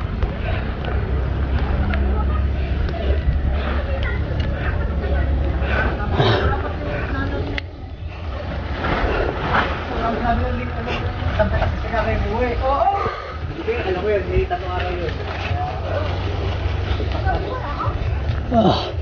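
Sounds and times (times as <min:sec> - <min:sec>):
indistinct voices: 0:00.0 - 0:11.4, 0:14.7 - 0:19.0
wind: 0:00.0 - 0:19.0.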